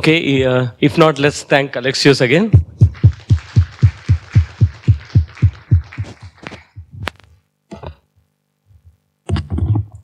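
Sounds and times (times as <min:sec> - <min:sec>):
close claps in steady beat: 0:02.6 - 0:07.3
audience applauding: 0:02.8 - 0:06.9.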